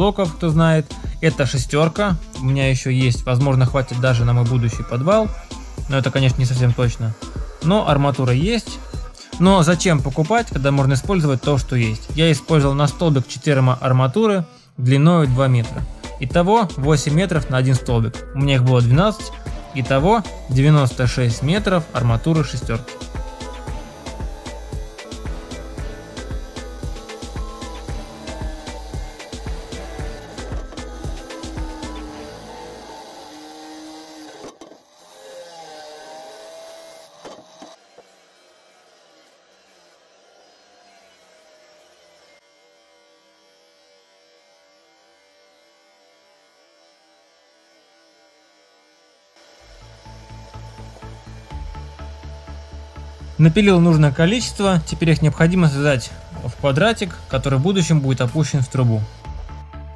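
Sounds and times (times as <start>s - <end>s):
music with steady beat: 0.0s - 13.1s, 15.2s - 32.8s, 49.8s - 59.9s.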